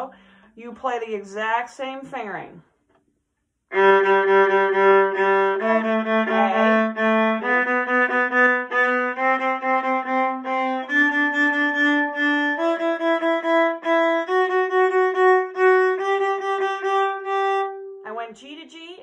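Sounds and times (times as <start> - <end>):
violin playing a scale: 3.7 - 18.3.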